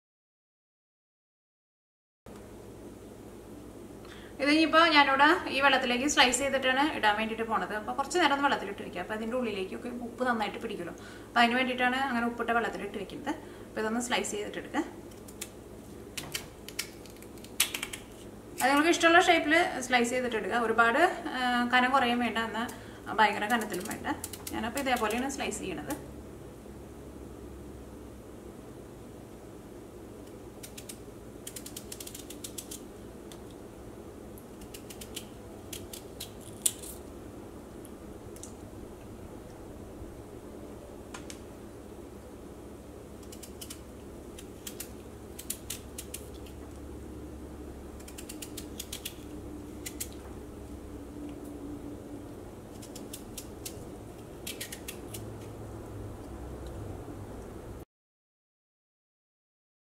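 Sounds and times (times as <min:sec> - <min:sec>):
low steady hum: 0:02.3 - 0:57.8.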